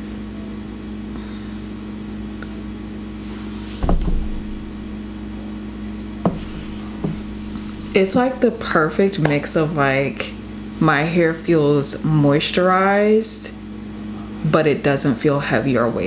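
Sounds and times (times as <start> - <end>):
steady low hum: 1.2 - 10.9
dull thump: 3.8 - 5.1, 6.2 - 8.4
faint taps: 6.3 - 8.2.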